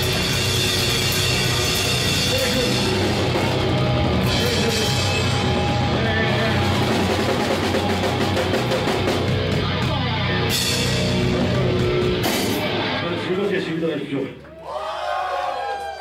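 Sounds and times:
electric guitar: 0.0s - 13.5s
fast drums: 0.0s - 14.3s.

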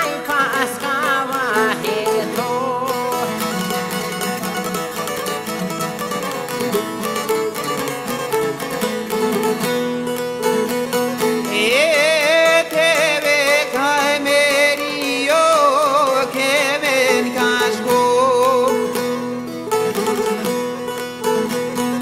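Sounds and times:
man singing: 0.0s - 4.8s, 11.2s - 19.6s
plucked lutes playing: 0.0s - 22.0s.

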